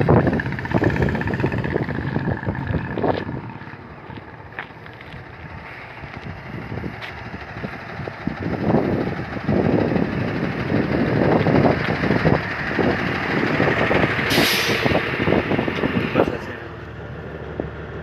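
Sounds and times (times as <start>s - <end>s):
air hissing burst: 14.3s - 15.0s.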